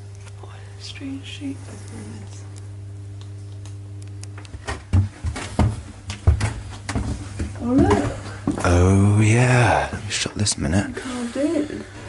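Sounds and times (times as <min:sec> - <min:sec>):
steady low hum: 0:00.0 - 0:12.0
footsteps on wooden deck: 0:04.5 - 0:08.8.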